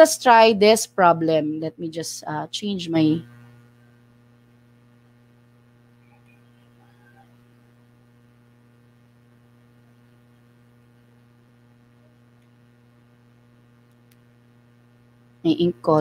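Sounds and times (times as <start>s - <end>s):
faint mains hum: 0.0s - 16.0s.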